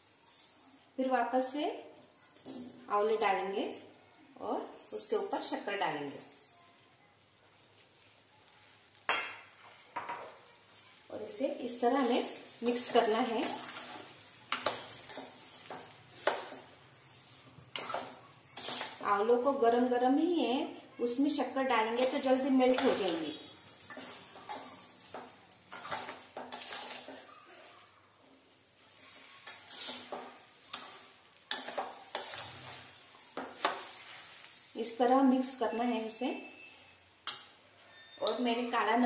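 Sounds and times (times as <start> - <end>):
metal spoon scraping a pan: 1.9 - 3.9, 4.6 - 6.6, 9.0 - 19.9, 21.8 - 38.8.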